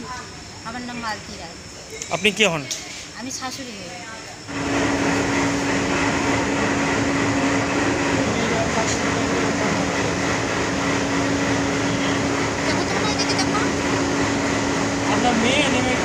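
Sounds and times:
loud mechanical hum: 0.0s - 16.0s.

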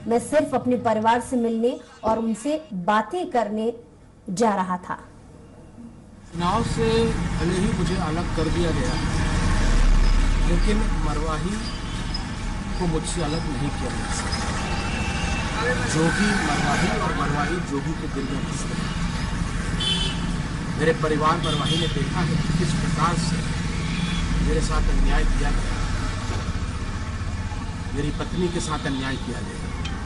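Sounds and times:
street noise: 4.0s - 30.0s
traffic rumble: 6.0s - 30.0s
man speaking: 6.3s - 9.1s, 15.6s - 18.9s, 20.8s - 23.5s.

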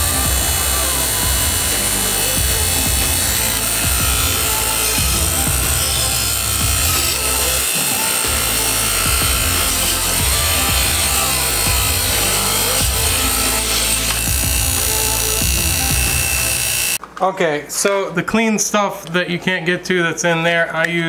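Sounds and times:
background music: 0.0s - 17.0s
wire wheel grinding hiss: 0.0s - 17.0s.

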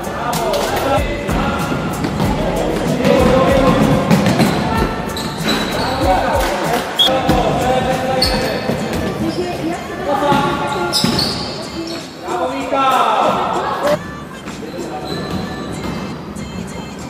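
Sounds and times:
players' voices echoing: 0.0s - 17.0s
shoe squeaks: 3.0s - 12.3s, 13.7s - 17.0s.

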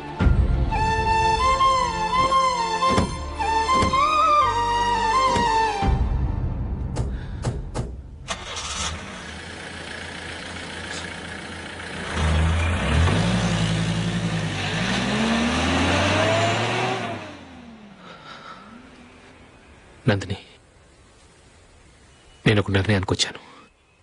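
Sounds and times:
car doors shutting: 2.2s - 4.2s
car engine starting and revving: 8.2s - 18.1s.

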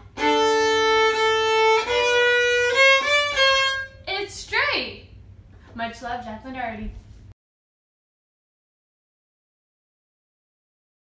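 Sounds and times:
viola bowed in sustained notes: 0.0s - 4.0s.

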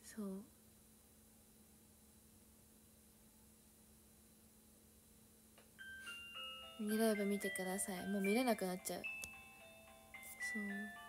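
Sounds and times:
electronic chime melody: 5.8s - 11.0s.

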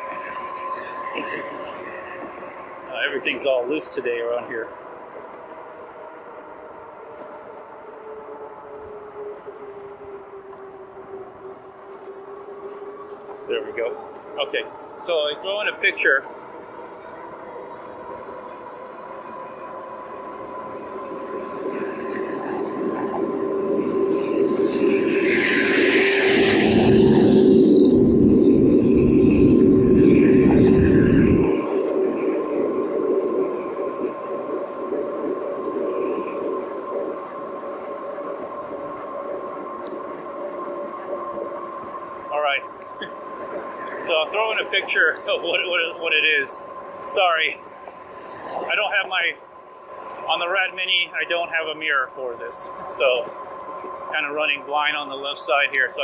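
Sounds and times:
electric motor whine: 0.0s - 56.0s
wind rumbling on microphone: 0.0s - 56.0s.

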